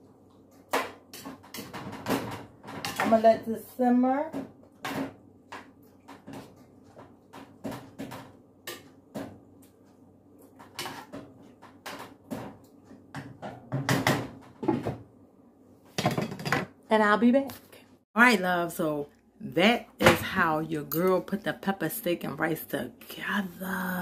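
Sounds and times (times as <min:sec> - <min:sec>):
spoon scraping a skillet: 0:10.5 - 0:11.6.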